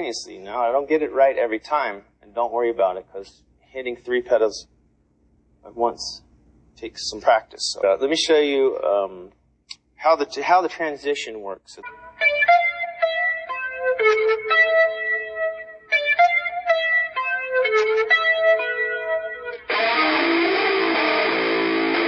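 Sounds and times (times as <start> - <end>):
clean electric guitar picking: 11.8 - 22.0
distorted electric guitar: 11.8 - 22.0.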